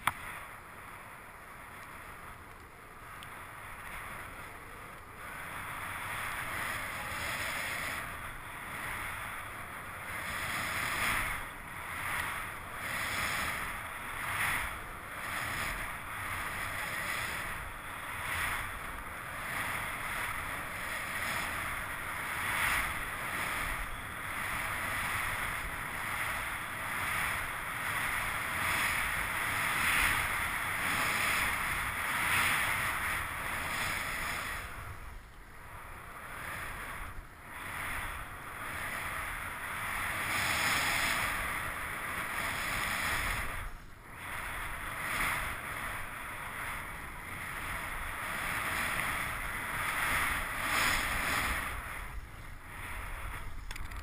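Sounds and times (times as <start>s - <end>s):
skis rushing through powder snow: 4.0s - 53.6s.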